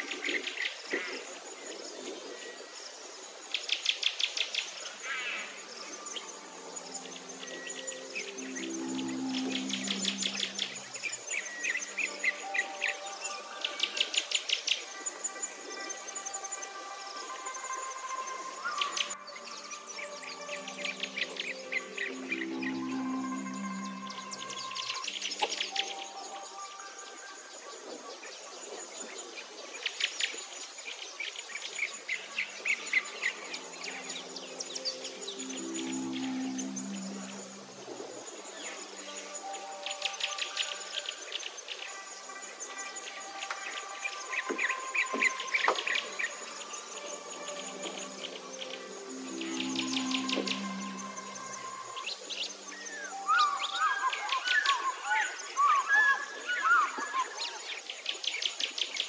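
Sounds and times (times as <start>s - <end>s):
bird chirping: 0.0s - 59.0s
pulsing insect trill: 0.0s - 59.0s
soft sustained music: 0.0s - 59.0s.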